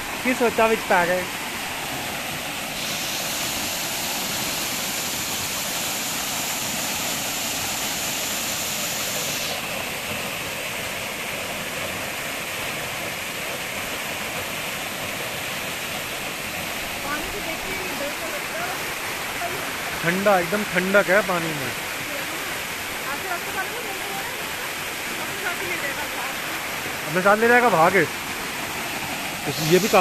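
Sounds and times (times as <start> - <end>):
waterfall rushing: 0.0 - 30.0.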